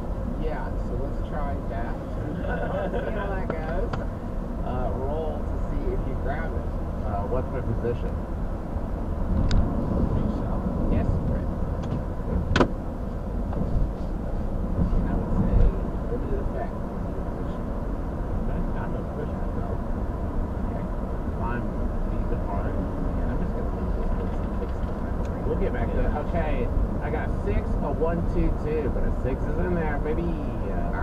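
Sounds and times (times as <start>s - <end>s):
road and tyre noise in car: 0.0s - 31.0s.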